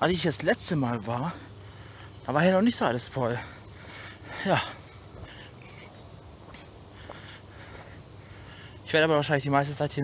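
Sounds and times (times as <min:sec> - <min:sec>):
outdoor background noise: 0:00.0 - 0:10.0
footsteps on asphalt: 0:00.8 - 0:09.2.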